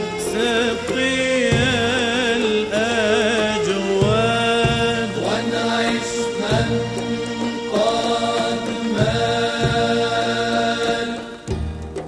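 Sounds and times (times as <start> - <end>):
male vocal group chanting: 0.2 - 11.5.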